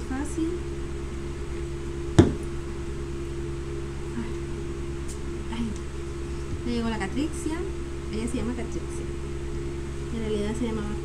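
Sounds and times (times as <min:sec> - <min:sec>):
electric fan humming: 0:00.0 - 0:11.0
sharp knock: 0:02.2 - 0:02.4.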